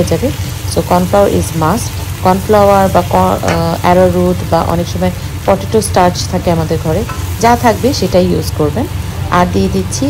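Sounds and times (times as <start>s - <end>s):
fish sizzling in a hot wok: 0.0s - 9.9s.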